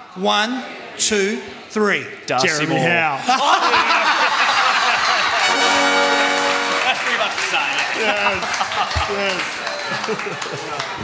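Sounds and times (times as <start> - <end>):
audience laughing: 3.0 - 11.0
horn-like blast: 5.4 - 7.2.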